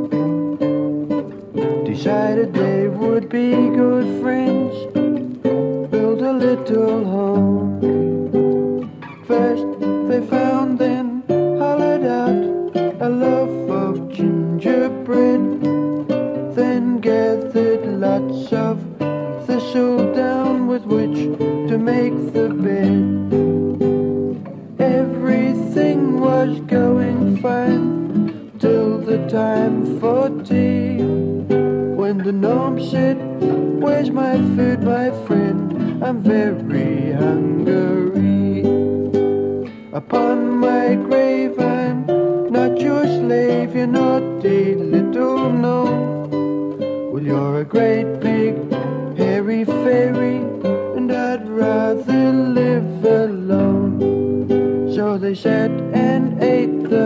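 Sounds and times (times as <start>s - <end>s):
acoustic guitars playing folk music: 0.0s - 57.0s.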